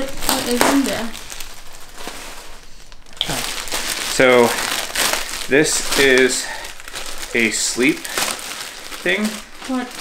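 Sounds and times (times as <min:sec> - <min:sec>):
bag packaging crinkling: 0:00.0 - 0:10.0.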